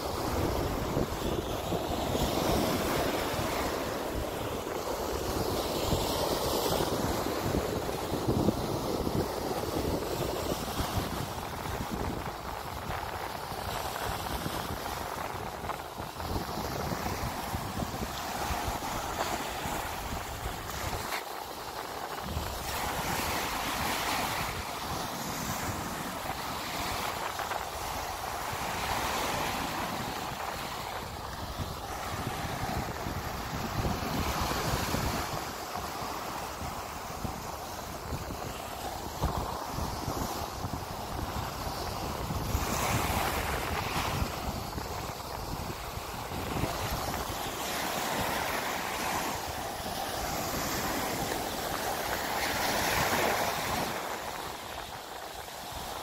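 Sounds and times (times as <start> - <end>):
sea waves breaking on beach: 0.0 - 56.0
wind buffeting microphone: 0.0 - 56.0.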